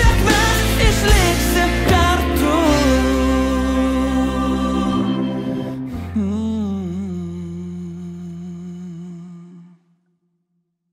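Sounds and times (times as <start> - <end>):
male singer holding a note: 0.0 - 9.8
sustained low bass note: 1.6 - 9.7.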